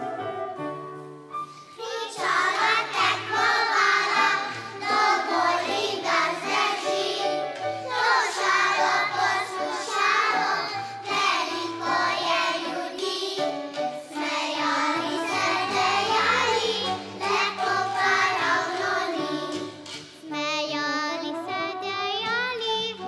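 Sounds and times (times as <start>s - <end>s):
small instrumental ensemble: 0.0s - 23.0s
children's choir singing: 1.7s - 20.3s.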